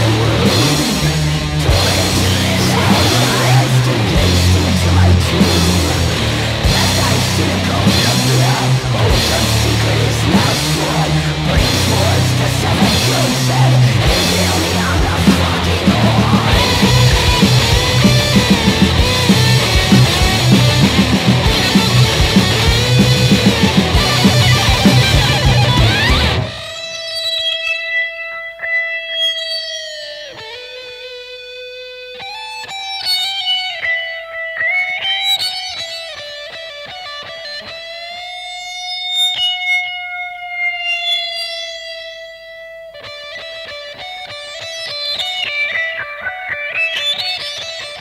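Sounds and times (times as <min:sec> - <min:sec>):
full band playing: 0:00.0 - 0:27.0
electric guitar solo: 0:00.0 - 0:48.0.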